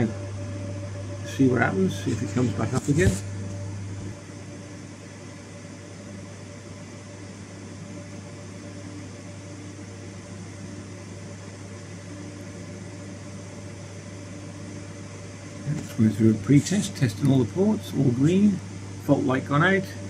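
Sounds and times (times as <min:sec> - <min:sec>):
cooling fans whirring: 0:00.0 - 0:20.0.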